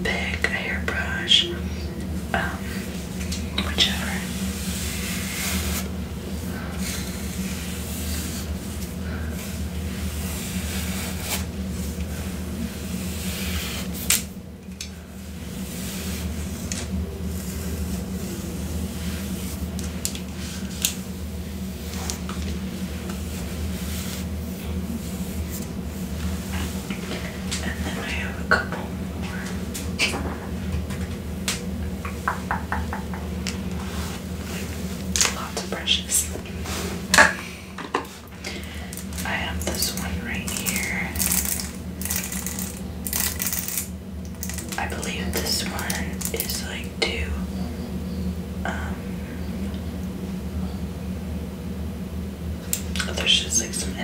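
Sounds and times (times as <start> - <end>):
low steady hum: 0.0 - 54.0
comb drawn through hair: 4.2 - 6.0, 6.8 - 14.3.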